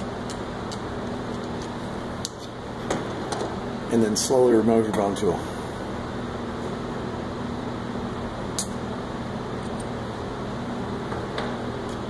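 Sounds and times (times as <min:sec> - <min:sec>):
fan hum: 0:00.0 - 0:12.0
sharp click: 0:08.6 - 0:08.8.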